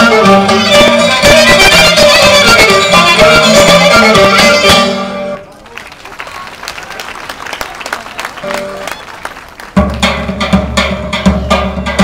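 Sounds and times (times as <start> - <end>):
folk dance music: 0.0 - 12.0
audience clapping: 5.4 - 10.3
steady drum beat: 9.8 - 12.0.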